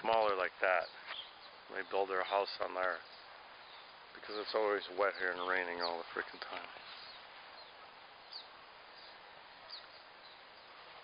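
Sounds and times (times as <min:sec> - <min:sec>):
faint outdoor hiss: 0:00.0 - 0:11.0
bird chirps: 0:00.7 - 0:11.0.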